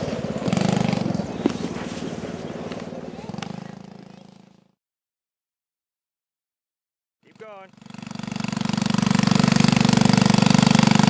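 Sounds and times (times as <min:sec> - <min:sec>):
atv engine running: 0:00.0 - 0:04.8, 0:07.3 - 0:11.0.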